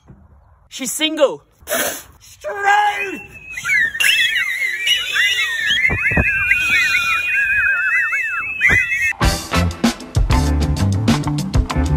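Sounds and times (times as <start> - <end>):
loud finger whistling: 2.9 - 9.2.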